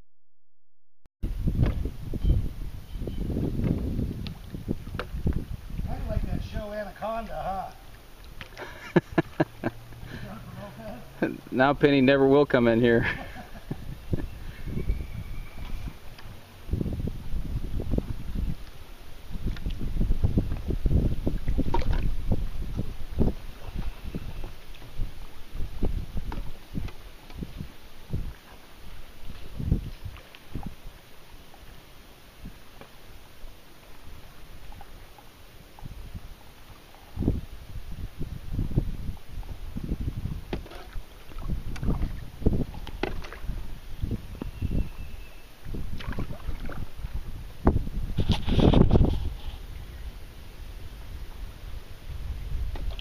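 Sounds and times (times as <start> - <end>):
wind buffeting the microphone: 1.2 - 10.4, 12.5 - 31.0, 35.7 - 53.0
paddle splashing in water: 3.6 - 5.9, 7.8 - 11.7, 17.3 - 37.3, 38.9 - 44.6, 45.6 - 53.0
water splash: 19.4 - 28.6, 40.5 - 43.6, 45.7 - 47.3.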